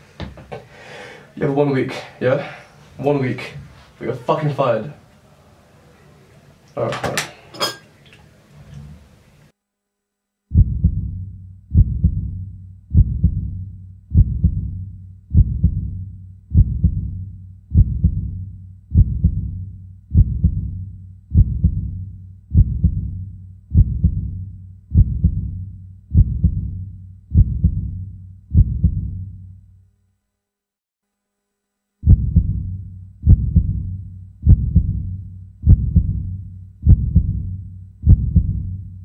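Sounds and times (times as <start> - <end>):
steady low hum: 10.2 - 29.8, 31.6 - 39.0
low thudding pulse: 10.5 - 29.4, 32.0 - 39.0.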